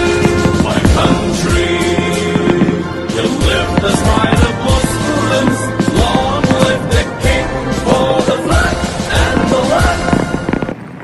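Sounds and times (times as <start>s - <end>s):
fireworks bangs and crackles: 0.0s - 11.0s
music: 0.0s - 11.0s.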